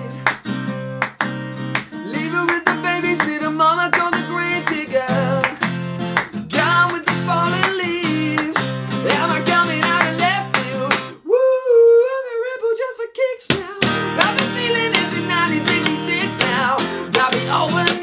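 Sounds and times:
man singing: 0.0s - 0.4s, 2.0s - 18.0s
hand claps: 0.0s - 11.1s, 13.5s - 18.0s
acoustic guitar strumming: 0.0s - 11.2s, 13.8s - 18.0s.

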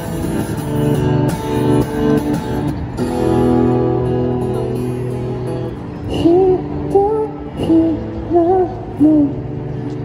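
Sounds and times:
acoustic guitar chords: 0.0s - 10.0s
man singing: 6.1s - 9.5s.

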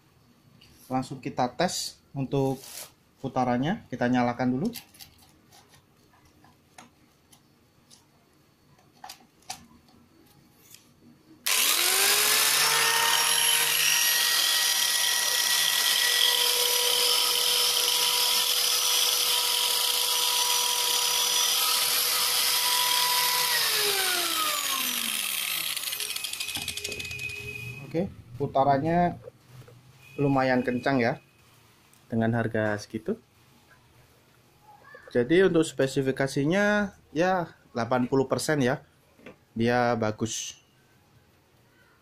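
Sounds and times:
angle grinder whining: 11.4s - 28.0s.

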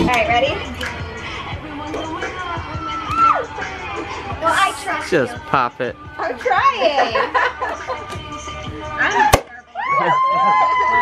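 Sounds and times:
people cheering: 2.8s - 3.5s, 9.1s - 11.0s
woman whooping: 2.8s - 3.5s, 9.0s - 11.0s.

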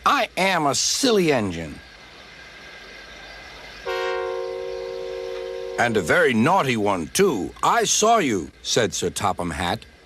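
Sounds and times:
faint hiss: 0.0s - 10.0s
steam engine whistle: 3.9s - 6.1s.

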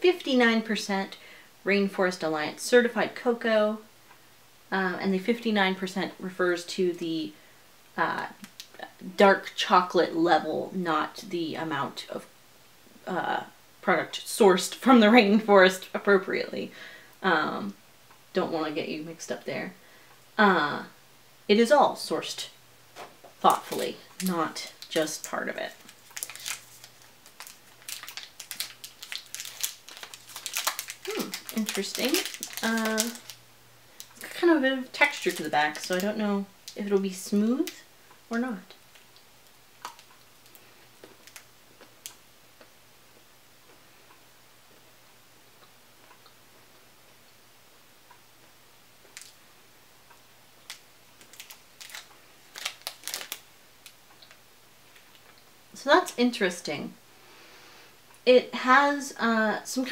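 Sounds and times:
foil wrapper crinkling: 23.0s - 33.4s, 34.0s - 37.8s, 39.8s - 42.2s, 49.1s - 49.4s, 50.6s - 55.3s.

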